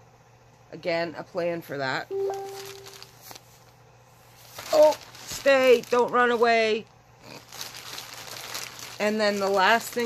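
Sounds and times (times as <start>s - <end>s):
plastic bag crinkling: 2.2s - 10.0s.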